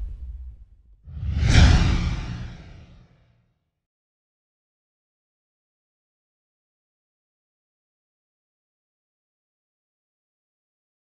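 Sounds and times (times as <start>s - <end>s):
deep rumble: 0.0s - 3.0s
sound-effect whooshes: 0.0s - 3.0s.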